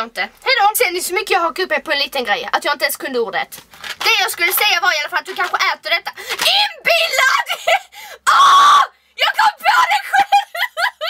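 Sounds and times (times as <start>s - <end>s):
woman shrieking: 6.5s - 10.9s.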